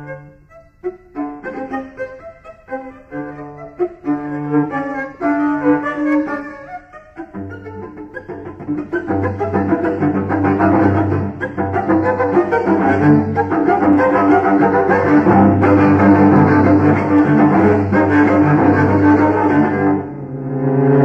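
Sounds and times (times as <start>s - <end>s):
solo cello playing: 0.0s - 21.0s.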